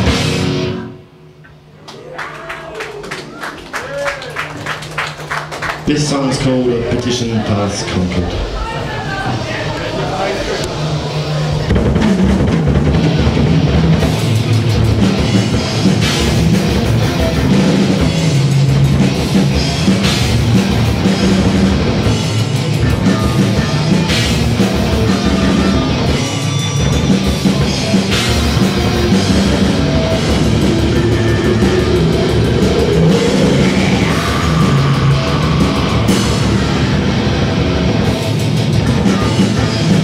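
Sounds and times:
drum kit: 0:00.0 - 0:01.7, 0:08.2 - 0:40.0
distorted electric guitars: 0:00.0 - 0:01.8, 0:05.6 - 0:40.0.

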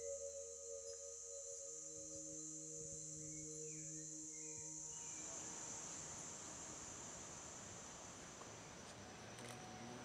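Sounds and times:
high-pitched insect chorus: 0:00.0 - 0:10.0
soft even hiss: 0:00.3 - 0:10.0.

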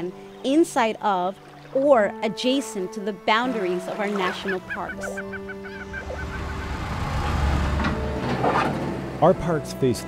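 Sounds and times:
excavator engine rumble: 0:04.4 - 0:09.2.

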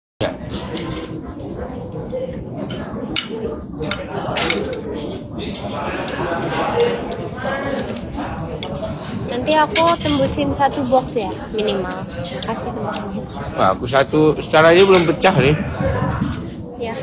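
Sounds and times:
indistinct chatter of voices: 0:00.2 - 0:17.0
cutlery and dishes clinking: 0:00.4 - 0:15.5.

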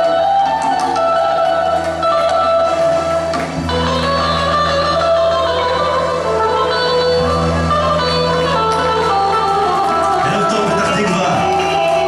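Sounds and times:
electric guitar: 0:00.0 - 0:12.0
keyboard: 0:00.0 - 0:12.0.

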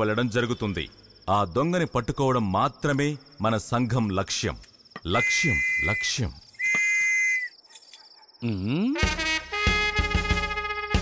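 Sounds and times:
crickets chirring: 0:00.0 - 0:09.0
metal whistle blast: 0:05.1 - 0:07.5.

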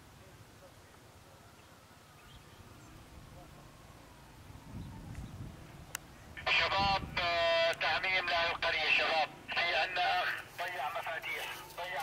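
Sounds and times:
person talking loudly: 0:06.4 - 0:12.0.

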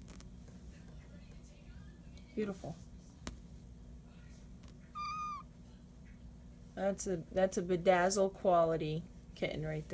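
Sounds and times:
kitten mewing: 0:04.9 - 0:05.5.

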